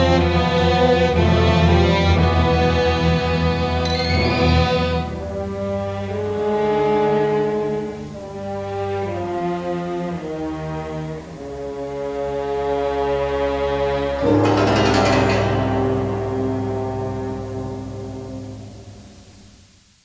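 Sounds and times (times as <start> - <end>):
orchestral brass chords: 1.0 - 19.5.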